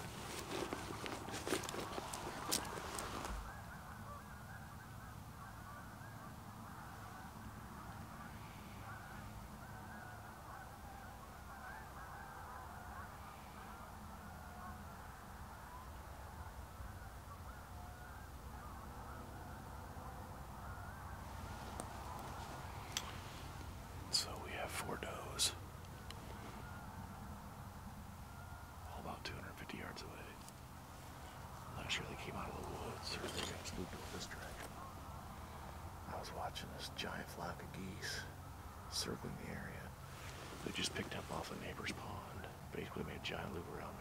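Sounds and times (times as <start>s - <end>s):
distant geese honking: 0.0s - 44.0s.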